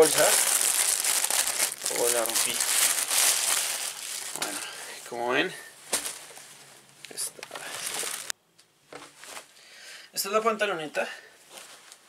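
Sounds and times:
plastic bag crinkling: 0:00.0 - 0:04.8, 0:07.4 - 0:08.3.

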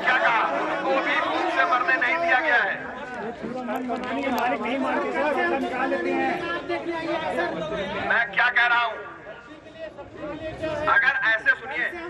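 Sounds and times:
men arguing: 0:00.0 - 0:12.0.

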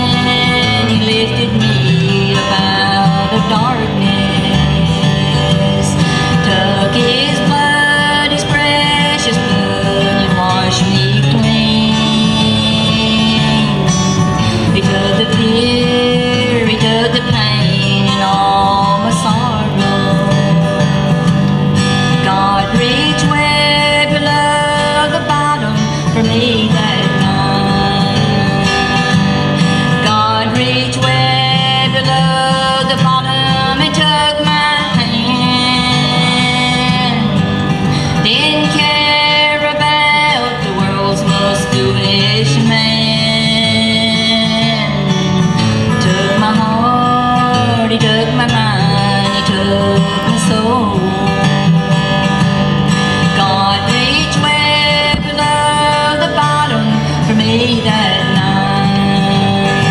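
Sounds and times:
acoustic guitar strumming: 0:00.0 - 0:59.9
bluegrass band playing: 0:00.0 - 0:59.9.

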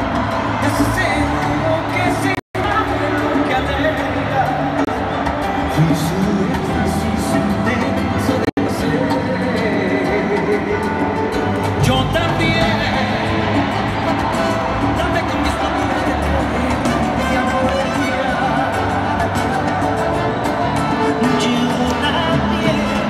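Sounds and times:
live salsa band: 0:00.0 - 0:23.0
man singing: 0:00.5 - 0:23.0.

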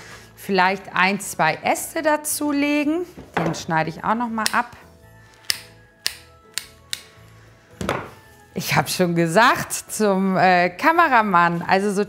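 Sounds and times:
secateurs snipping branch: 0:04.4 - 0:04.7, 0:05.3 - 0:07.1.

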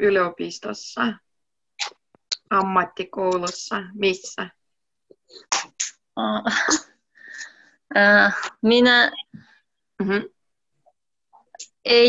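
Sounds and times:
person sneezing: 0:05.4 - 0:06.0.

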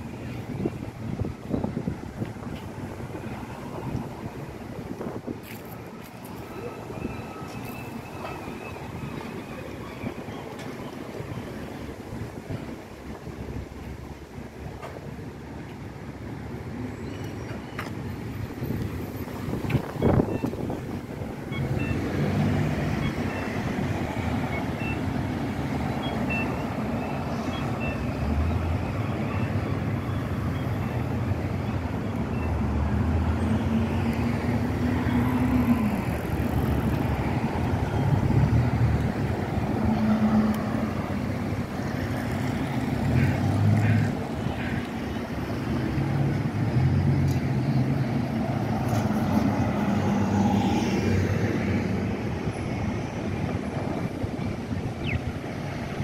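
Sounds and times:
cars driving past: 0:17.5 - 0:56.0.

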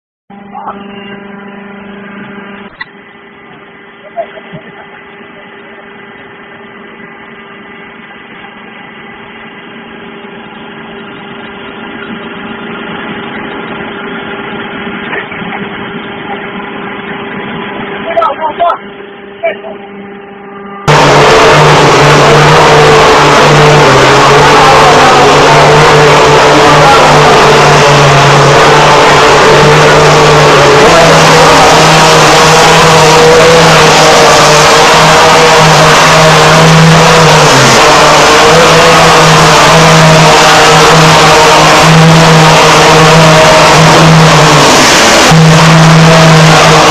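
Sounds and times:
low motor hum: 0:00.3 - 0:46.9.

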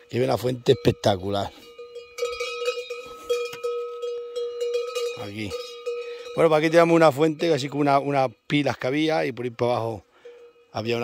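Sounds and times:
cowbell clanking: 0:00.0 - 0:11.0.

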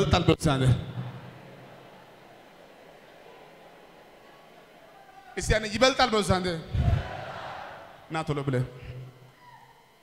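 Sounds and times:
man's amplified voice: 0:00.0 - 0:01.3, 0:05.0 - 0:07.0, 0:08.0 - 0:09.2
faint hall room hiss: 0:00.0 - 0:10.0.

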